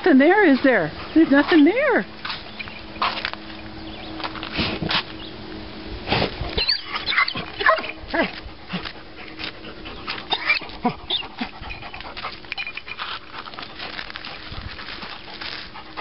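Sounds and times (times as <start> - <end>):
dog paws scraping soil: 0.0 - 16.0
dog whining: 6.5 - 12.9.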